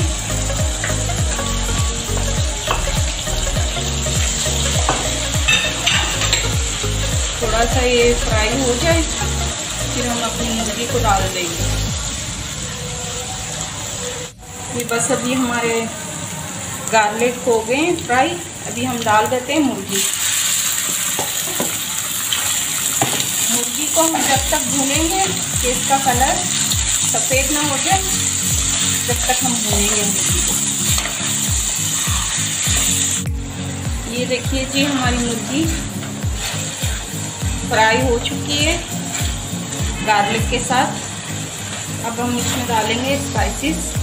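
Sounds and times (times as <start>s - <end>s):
garlic sizzling in hot oil: 0.0s - 44.0s
spatula scraping a wok: 25.9s - 33.2s, 34.7s - 37.2s, 37.8s - 43.2s.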